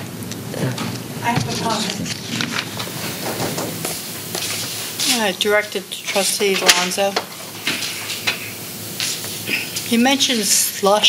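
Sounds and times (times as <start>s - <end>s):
room and microphone hiss: 0.0s - 11.0s.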